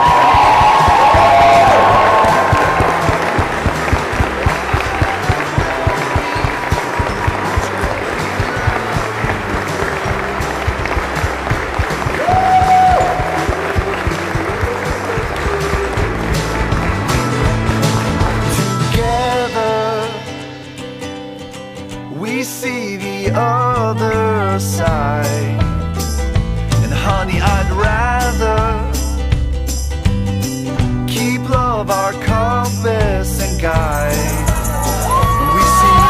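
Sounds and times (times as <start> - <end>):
crowd applauding and cheering: 0.0 - 19.8, 33.6 - 36.0
music with steady beat: 0.0 - 36.0
voices calling out: 34.0 - 36.0.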